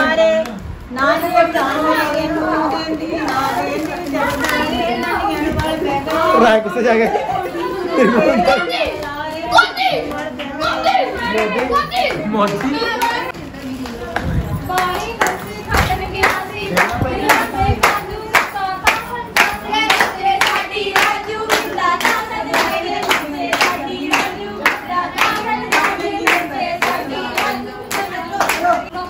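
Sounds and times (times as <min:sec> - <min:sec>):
women singing together: 0:00.0 - 0:29.0
rhythmic clapping: 0:01.2 - 0:29.0.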